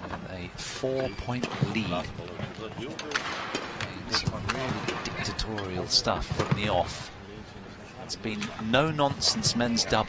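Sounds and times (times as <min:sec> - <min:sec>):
indoor arena background noise: 0:00.0 - 0:10.0.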